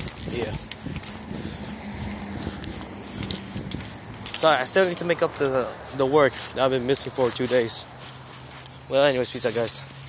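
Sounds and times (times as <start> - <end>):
keys jingling: 0.0 - 10.0.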